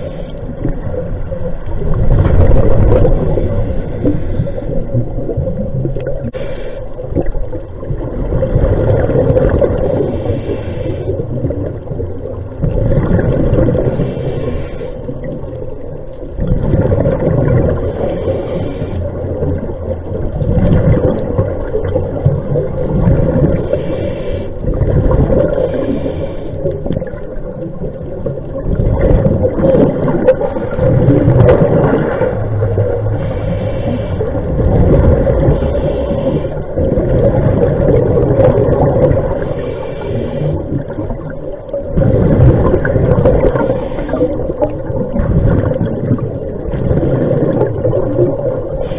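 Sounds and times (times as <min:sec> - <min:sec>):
diver exhaling bubbles underwater: 0:00.0 - 0:06.4, 0:07.0 - 0:15.6, 0:16.3 - 0:24.0, 0:24.6 - 0:48.9.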